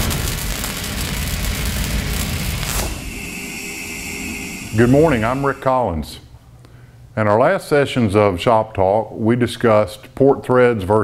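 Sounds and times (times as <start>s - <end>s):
cinematic boom with crackle: 0.0s - 5.6s
short whoosh: 1.5s - 6.2s.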